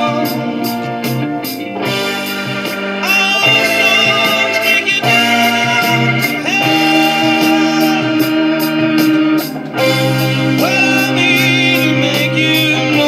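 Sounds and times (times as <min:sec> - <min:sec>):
jazz-rock band playing: 0:00.0 - 0:13.0
steady cymbal beat: 0:00.0 - 0:13.0.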